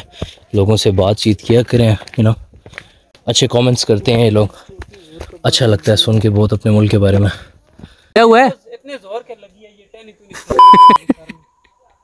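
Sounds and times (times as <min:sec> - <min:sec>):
censor bleep: 0:10.5 - 0:11.6.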